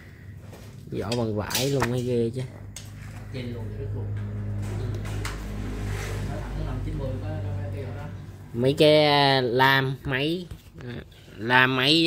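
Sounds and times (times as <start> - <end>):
low motor hum: 2.4 - 9.1.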